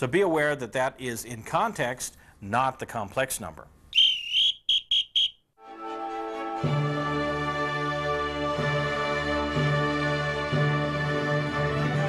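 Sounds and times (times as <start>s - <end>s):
music: 5.6s - 12.0s.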